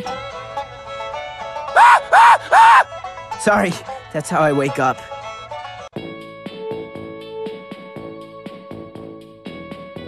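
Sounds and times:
plucked strings music: 0.0s - 1.8s, 2.8s - 7.3s
man yelling: 1.8s - 2.8s
man crying out: 1.8s - 2.9s.

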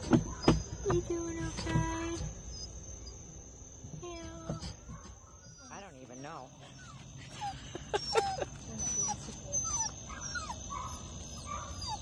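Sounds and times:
dog whining: 0.0s - 3.2s, 4.0s - 12.0s.

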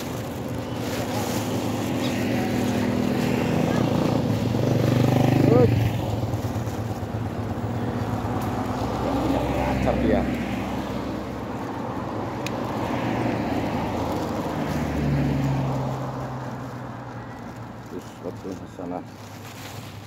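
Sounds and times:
motorcycles passing: 0.0s - 20.0s.

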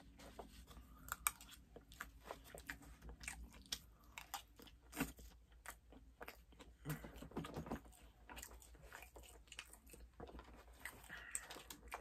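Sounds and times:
person chewing food: 0.0s - 12.0s.

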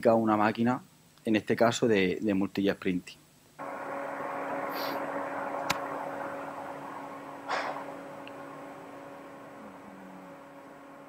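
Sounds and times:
machine hum with hiss: 3.6s - 11.0s.

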